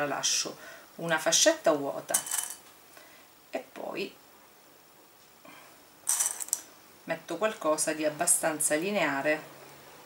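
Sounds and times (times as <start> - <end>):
dry pasta clattering: 2.1 - 2.6, 6.1 - 6.6.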